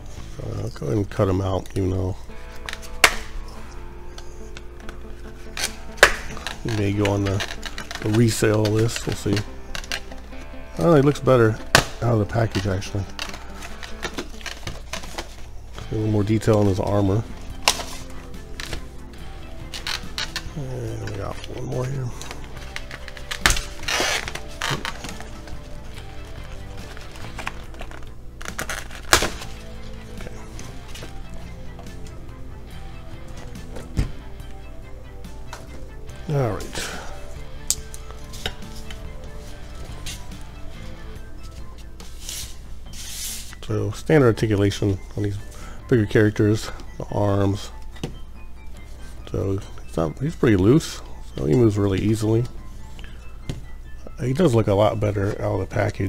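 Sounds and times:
faint background music: 0:00.0 - 0:56.0
clicks taps and scrapes of handling: 0:02.5 - 0:10.5
hands rustling: 0:35.4 - 0:43.6.

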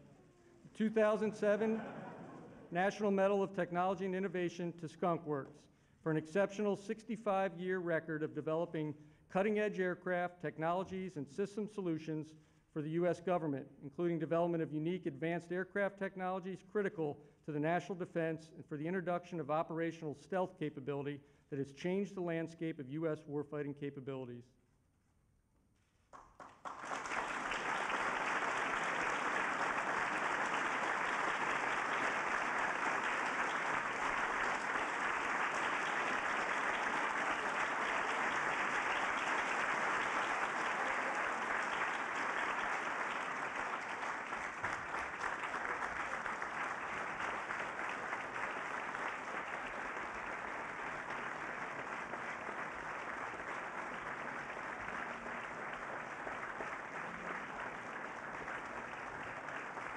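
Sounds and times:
large audience applauding: 0:26.1 - 0:59.9.

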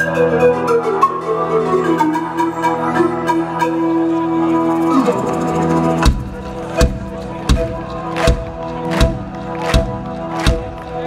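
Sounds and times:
rock band playing: 0:04.2 - 0:11.0.

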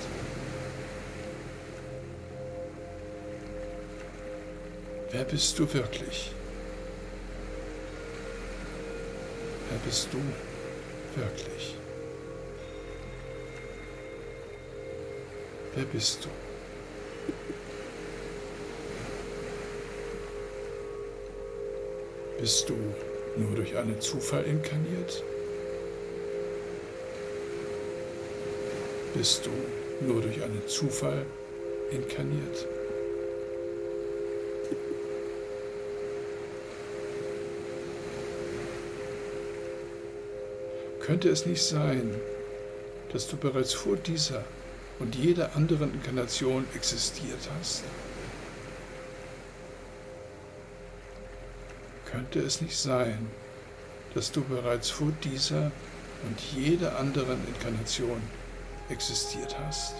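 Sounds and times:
ambient drone music: 0:00.0 - 0:59.9
steady held tones: 0:00.0 - 0:59.9.

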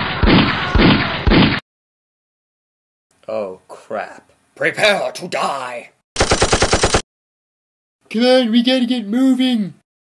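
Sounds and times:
machine-gun burst: 0:06.2 - 0:07.0.

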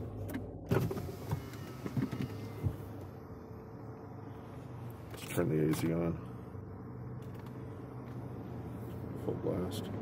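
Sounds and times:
car air-conditioning blower: 0:00.0 - 0:10.0
car engine idling: 0:00.0 - 0:10.0.

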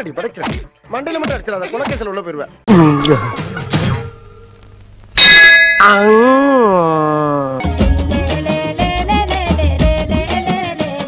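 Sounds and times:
bell ding: 0:02.8 - 0:04.5, 0:05.2 - 0:06.4.

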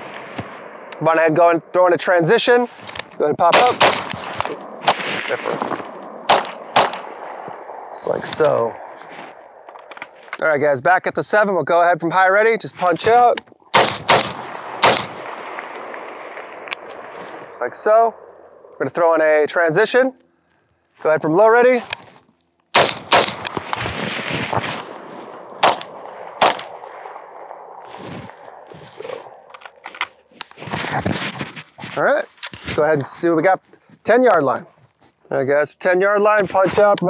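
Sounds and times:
rifle shots with echo: 0:00.0 - 0:10.1, 0:13.7 - 0:18.8, 0:22.7 - 0:29.9
gear rustling and scuffing: 0:09.0 - 0:10.4, 0:29.9 - 0:32.8.

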